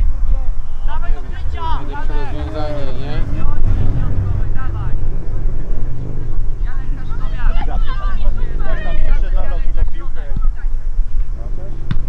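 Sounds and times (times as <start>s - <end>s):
voices calling out: 0.0s - 11.9s
wind buffeting microphone: 0.0s - 12.0s.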